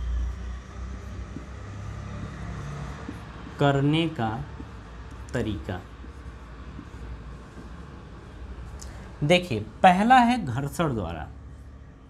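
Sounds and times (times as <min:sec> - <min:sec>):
low room rumble with hum: 0:00.0 - 0:12.0
person speaking: 0:03.1 - 0:08.4, 0:09.1 - 0:11.4.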